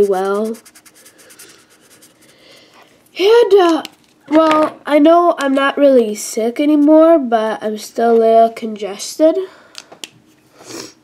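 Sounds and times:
marker scratching on paper: 0.0 - 2.6.

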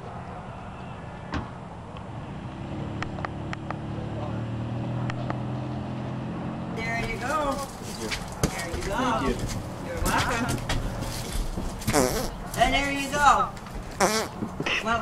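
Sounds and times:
vehicle engine humming: 0.0 - 15.0
voices: 6.8 - 15.0.

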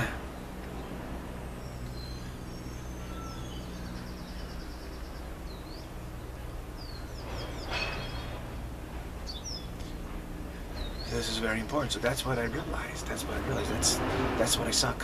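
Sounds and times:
low hum: 0.0 - 15.0
small birds chirping: 0.0 - 15.0.

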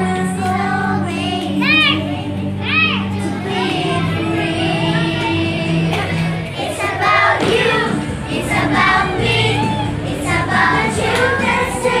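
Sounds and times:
young children singing: 0.0 - 12.0.

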